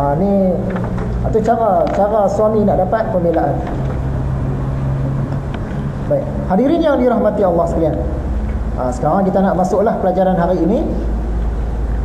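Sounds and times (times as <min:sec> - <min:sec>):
background noise: 0:00.0 - 0:12.0
steady low hum: 0:00.0 - 0:12.0.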